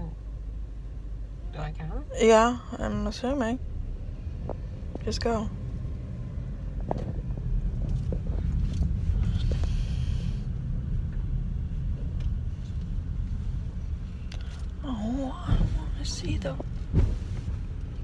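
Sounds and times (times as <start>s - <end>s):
car interior rumble: 0.0s - 18.0s.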